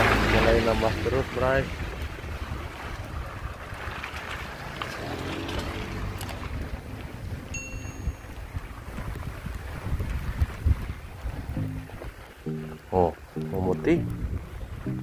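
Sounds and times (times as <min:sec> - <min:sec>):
wind buffeting microphone: 0:00.0 - 0:12.5, 0:13.1 - 0:15.0
brief high tone: 0:07.6 - 0:08.3, 0:12.5 - 0:14.2
low bumps: 0:11.4 - 0:15.0.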